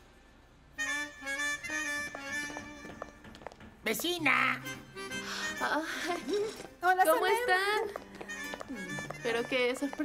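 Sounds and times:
background music: 0.6 - 10.0.

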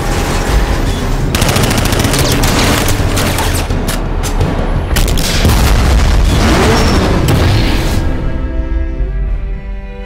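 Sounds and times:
dramatic score music: 0.0 - 10.0
gunfire bursts: 1.3 - 3.7.

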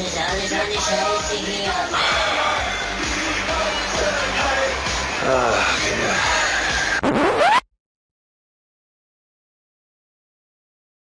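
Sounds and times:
scratch-like upward pitch sweep: 7.0 - 7.6.

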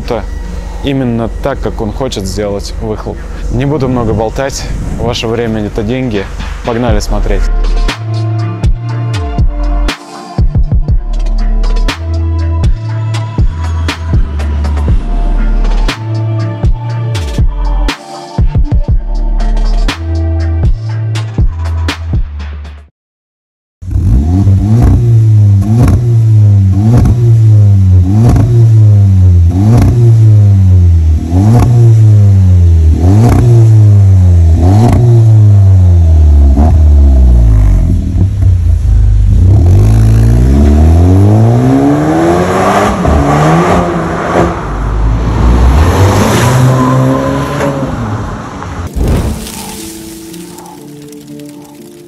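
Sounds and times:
car engine revving: 23.8 - 49.6
car accelerating away: 23.9 - 48.9.

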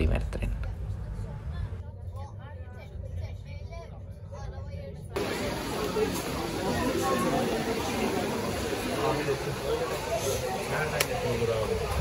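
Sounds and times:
crowd chatter: 0.0 - 12.0
faint distant voices: 0.7 - 12.0.

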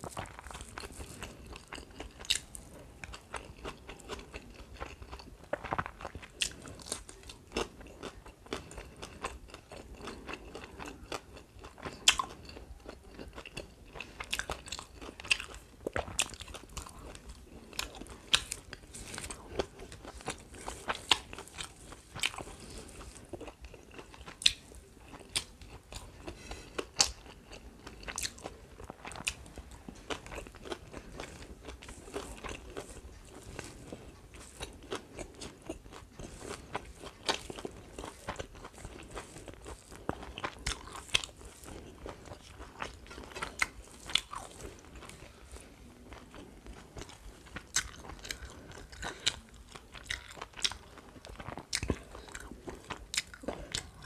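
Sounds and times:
chewing and crunching food: 0.0 - 54.0.

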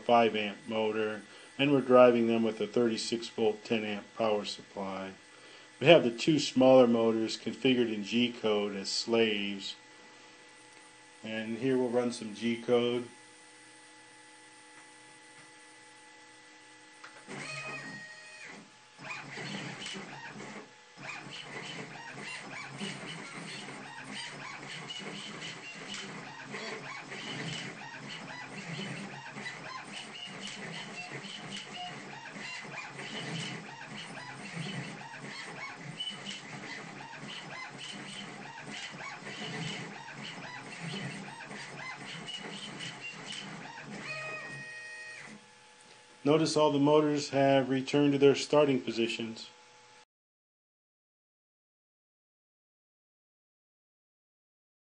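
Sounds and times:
stepper motor whine: 0.0 - 47.2
stepper motors whirring: 17.0 - 45.6.

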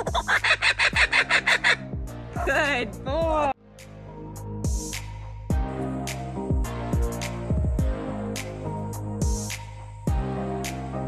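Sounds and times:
kookaburra laughing call: 0.0 - 1.9
steady low beat: 0.0 - 10.4.

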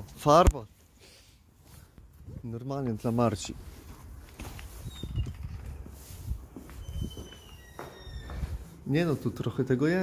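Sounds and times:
footsteps: 1.6 - 10.0.

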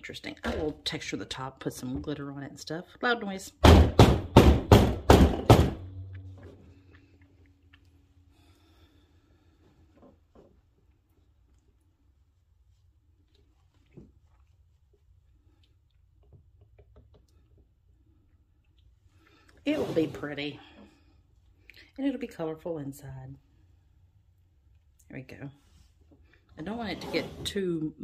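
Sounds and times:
wooden mold thunking on countertop: 3.6 - 5.9.

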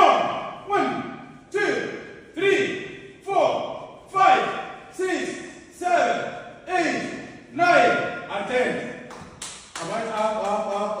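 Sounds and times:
person calling out rhythmically: 0.0 - 9.0.

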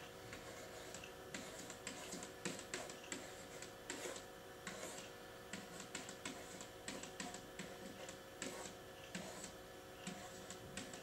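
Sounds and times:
pen tapping and scratching on whiteboard: 0.3 - 11.0.

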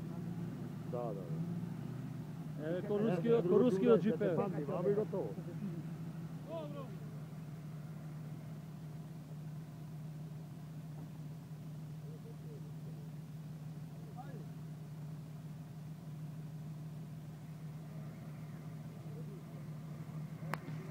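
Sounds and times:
car engine idling: 0.0 - 20.9.

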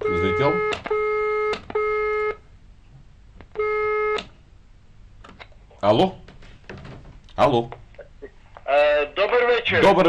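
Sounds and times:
buzzy telephone line beep: 0.0 - 2.4, 3.6 - 4.2
man answering phone: 0.0 - 2.4.

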